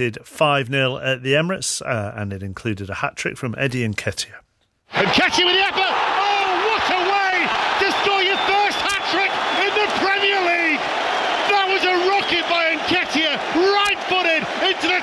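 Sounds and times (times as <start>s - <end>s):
person talking: 11.5s - 15.0s.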